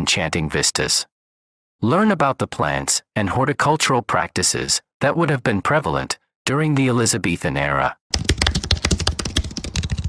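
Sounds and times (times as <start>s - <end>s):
keyboard typing clicks: 8.2s - 10.0s.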